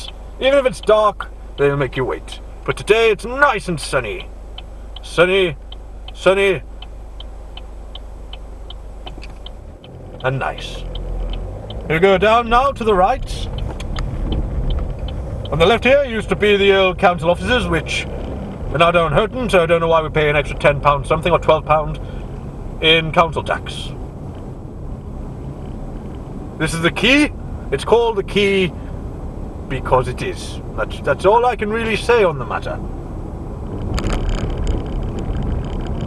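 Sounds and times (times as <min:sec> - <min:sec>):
turn signal clicking: 0:00.0 - 0:22.7
car engine idling: 0:00.0 - 0:36.0.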